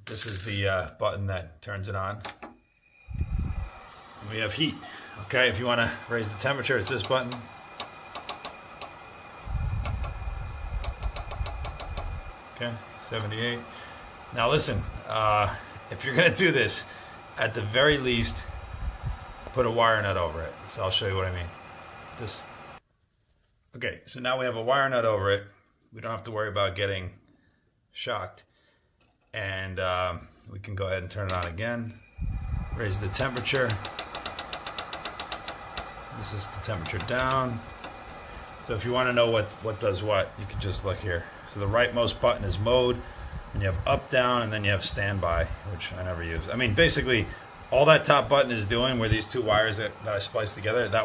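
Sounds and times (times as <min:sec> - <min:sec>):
push-button clicking: 0:06.8 - 0:09.0, 0:10.8 - 0:12.1, 0:33.2 - 0:36.0, 0:36.8 - 0:38.2.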